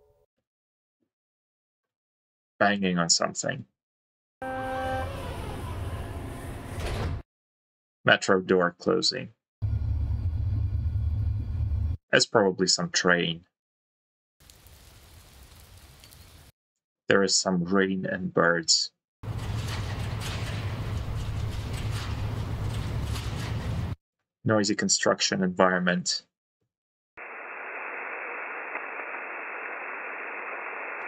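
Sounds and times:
rain falling: 0:14.4 - 0:16.5
radio static hiss: 0:27.2 - 0:31.0.

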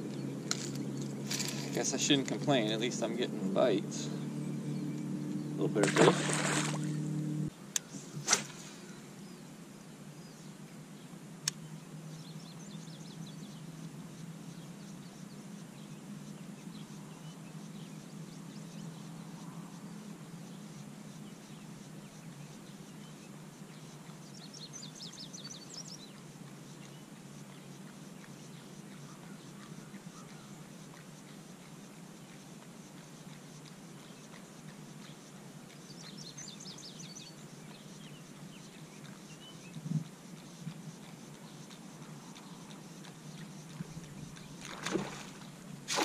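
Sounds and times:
faint bird chirps: 0:20.5 - 0:30.6.

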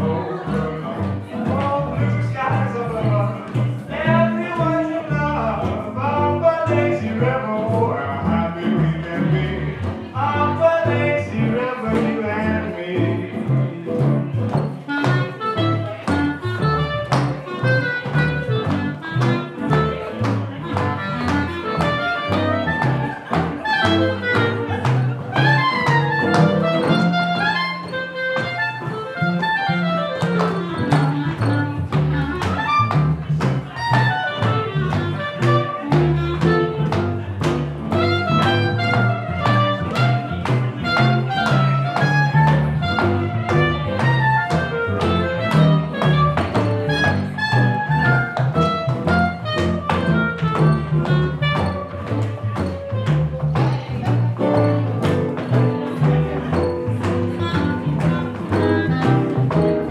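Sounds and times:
guitar: 0:00.0 - 0:59.9
jazz band playing swing: 0:00.0 - 0:59.9
upright double bass: 0:00.0 - 0:59.9.

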